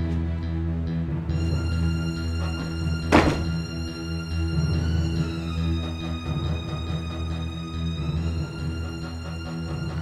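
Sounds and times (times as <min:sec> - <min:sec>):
sustained string music: 0:00.0 - 0:10.0
car door shutting: 0:03.1 - 0:03.6.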